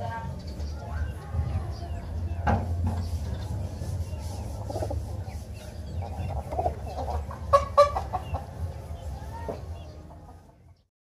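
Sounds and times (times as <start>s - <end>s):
chickens clucking: 0.0s - 10.9s
chicken squawks: 6.0s - 8.4s.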